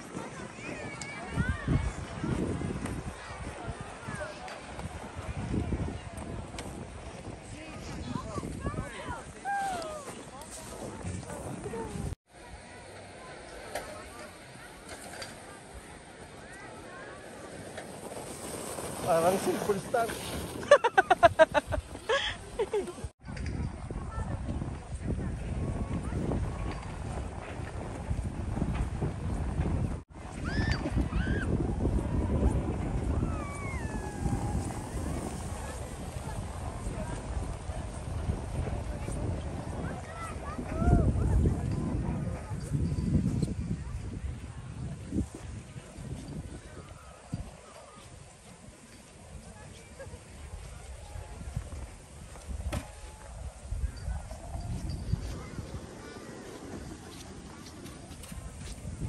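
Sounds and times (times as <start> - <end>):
wind rumbling on microphone: 0.0 - 12.2, 17.0 - 59.0
footsteps crunching in snow: 17.8 - 22.8, 54.7 - 59.0
children calling and squealing: 33.0 - 36.8.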